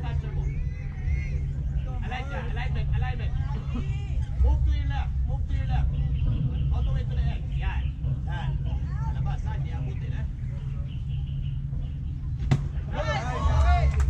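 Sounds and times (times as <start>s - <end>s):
people chattering and calling out: 0.0s - 14.0s
steady low rumble: 0.0s - 14.0s
sharp crack of ball: 12.4s - 12.8s.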